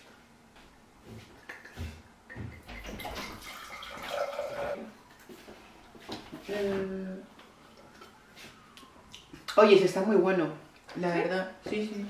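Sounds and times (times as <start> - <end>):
wine pouring into glass: 3.0 - 4.9.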